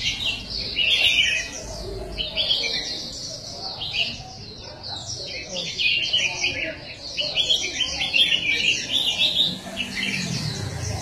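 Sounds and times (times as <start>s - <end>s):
birds chirping and twittering: 0.0s - 11.0s.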